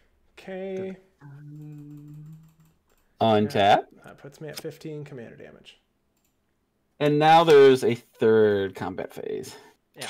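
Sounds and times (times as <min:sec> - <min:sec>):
person humming: 0:00.6 - 0:02.8.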